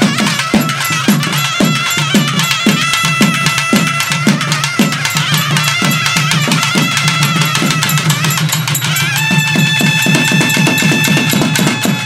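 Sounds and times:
fast drum rhythm: 0.0s - 12.0s
held double-reed pipe note: 0.0s - 12.0s.

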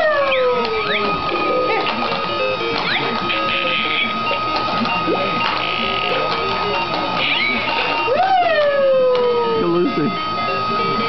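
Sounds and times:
toy motor whirring: 0.0s - 11.0s
electronic tune in stepped notes: 0.1s - 9.0s.

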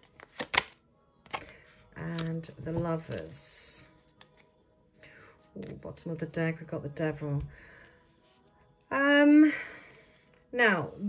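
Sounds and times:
cards snapping: 0.1s - 1.5s.

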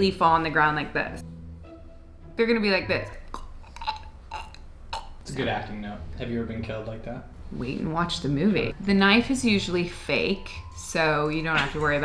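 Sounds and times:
woman making gurgling choking sounds: 3.3s - 5.2s.

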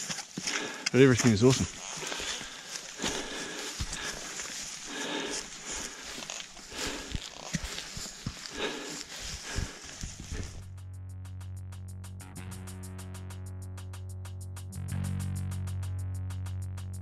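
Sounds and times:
heavy breathing: 0.0s - 1.0s, 1.8s - 10.6s
boots and gear thudding: 0.0s - 10.6s
footsteps through grass: 0.0s - 10.7s
music: 10.6s - 17.0s.

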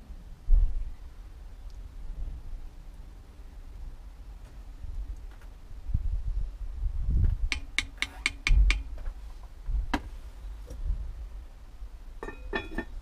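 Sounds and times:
metal spoon clinking on a pot: 12.2s - 13.0s
pot lid clinking: 12.2s - 13.0s.

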